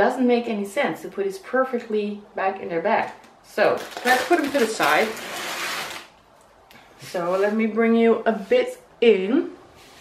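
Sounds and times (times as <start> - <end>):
plastic bags crinkling: 3.6 - 6.2.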